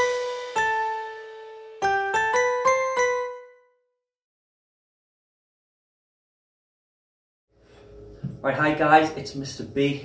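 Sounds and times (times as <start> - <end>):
chiming jingle note: 0.0 - 3.8.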